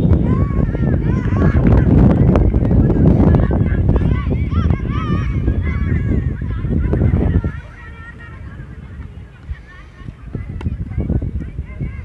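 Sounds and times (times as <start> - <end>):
heavy low rumble: 0.0 - 12.0.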